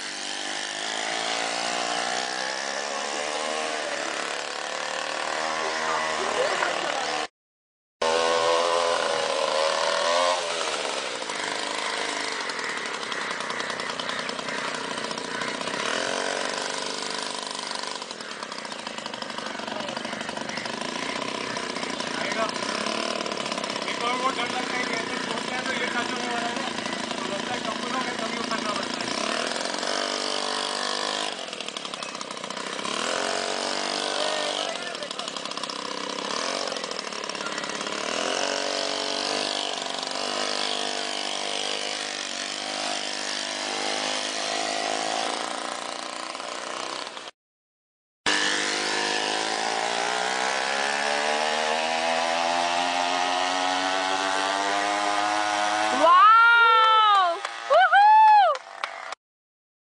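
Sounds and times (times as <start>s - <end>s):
engine running and revving: 0.0s - 7.3s, 8.0s - 18.4s, 19.0s - 45.7s, 48.3s - 56.1s.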